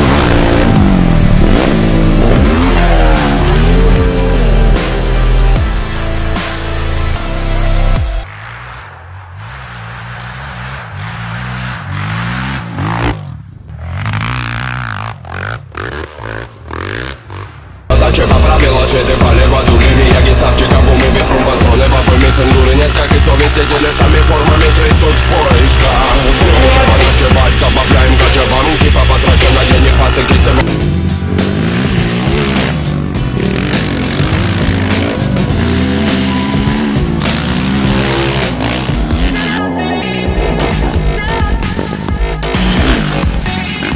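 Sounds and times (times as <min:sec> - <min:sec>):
quad engine revving: 0:00.0 - 0:07.2, 0:09.4 - 0:43.9
music: 0:00.0 - 0:08.9, 0:17.9 - 0:43.9.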